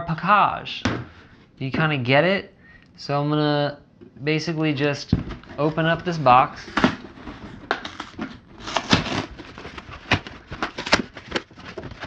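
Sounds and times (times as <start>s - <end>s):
cardboard crackling and snapping: 6.6s - 12.0s
packing tape tearing: 6.6s - 12.0s.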